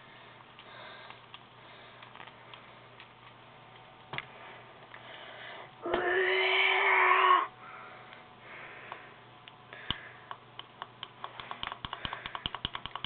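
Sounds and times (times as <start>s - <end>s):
toy click: 10.6s - 13.0s.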